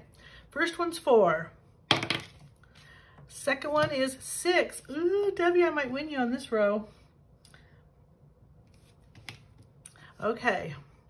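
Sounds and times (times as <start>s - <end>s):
pen set down on wooden table: 1.9s - 2.5s.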